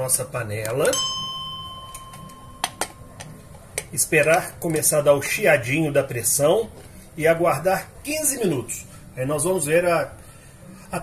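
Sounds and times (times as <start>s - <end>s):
pressure cooker ringing: 0.9s - 3.2s.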